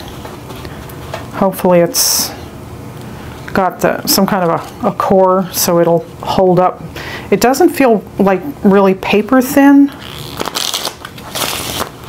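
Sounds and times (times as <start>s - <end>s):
cards riffle-shuffled: 10.0s - 12.0s.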